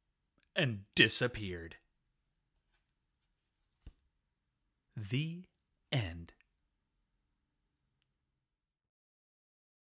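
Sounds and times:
narrator speaking: 0:00.5 - 0:01.9, 0:04.9 - 0:06.5.

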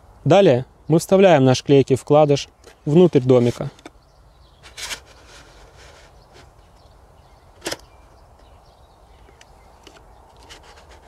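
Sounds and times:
sharp click: 0:07.6 - 0:07.9.

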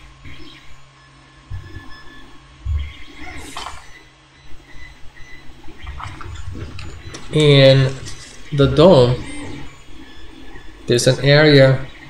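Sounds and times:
soft low thumps: 0:01.4 - 0:11.0
paper parts handling noises: 0:03.4 - 0:03.9, 0:05.8 - 0:08.7
paper rustle: 0:05.8 - 0:08.6.

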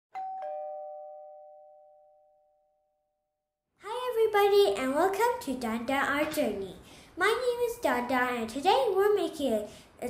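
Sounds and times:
two-note ding-dong chime: 0:00.1 - 0:02.6.

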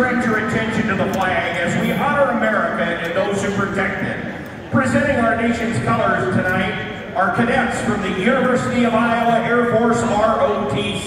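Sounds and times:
man speaking over public address: 0:00.0 - 0:11.0.

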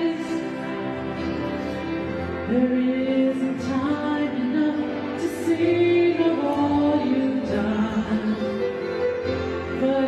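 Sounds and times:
woman singing worship song: 0:00.0 - 0:00.7, 0:02.5 - 0:08.8
keyboard accompaniment: 0:00.0 - 0:10.0.

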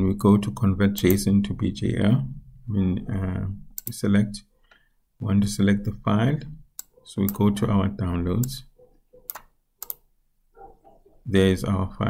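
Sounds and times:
computer mouse clicks: 0:03.8 - 0:04.0, 0:06.8 - 0:07.5, 0:09.2 - 0:10.0.

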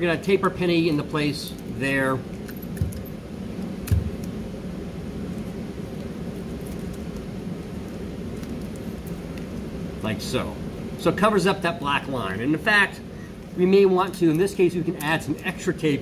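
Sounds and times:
steady ventilation hum: 0:00.0 - 0:16.0.

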